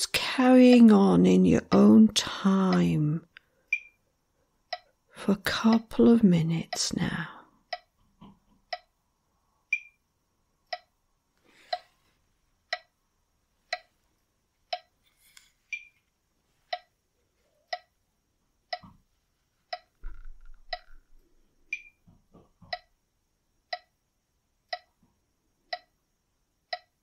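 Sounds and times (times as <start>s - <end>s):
metronome ticking: 0.2s - 4.0s, 4.6s - 8.0s, 8.6s - 9.0s, 9.7s - 10.0s, 10.6s - 11.0s, 11.6s - 12.0s, 12.6s - 13.0s, 13.6s - 14.0s, 14.7s - 15.0s, 15.7s - 16.0s, 16.7s - 17.0s, 17.6s - 18.0s, 18.6s - 19.0s, 19.7s - 20.0s, 20.6s - 23.0s, 23.6s - 25.0s, 25.6s - 27.0s
accented metronome click: 0.6s - 1.0s, 2.7s - 4.0s, 4.7s - 7.0s, 7.7s - 9.0s, 9.7s - 11.0s, 11.6s - 12.0s, 12.6s - 13.0s, 13.6s - 14.0s, 14.6s - 15.0s, 15.7s - 16.1s, 16.7s - 17.0s, 17.7s - 18.0s, 18.6s - 19.0s, 19.7s - 20.0s, 20.6s - 22.1s, 22.7s - 23.0s, 23.6s - 25.1s, 25.7s - 27.0s.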